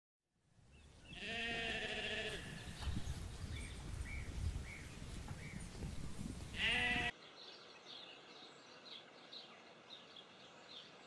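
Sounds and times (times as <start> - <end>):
sheep bleating: 1.2 - 2.6, 6.5 - 7.1.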